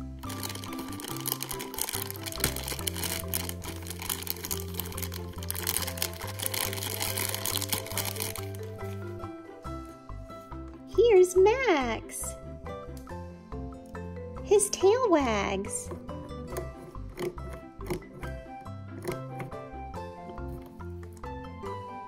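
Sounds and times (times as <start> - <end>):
plastic bag crinkling and tearing: 0.1 - 9.0.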